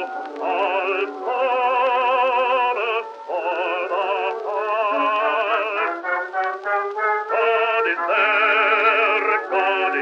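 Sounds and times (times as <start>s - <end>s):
old recording of a hymn: 0.0s - 10.0s.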